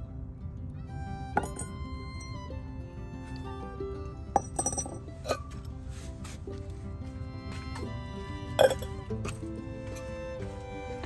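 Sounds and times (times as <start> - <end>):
background music: 0.0 - 11.0
ceramic pots clinking: 1.4 - 1.8, 4.3 - 5.7, 8.4 - 9.4.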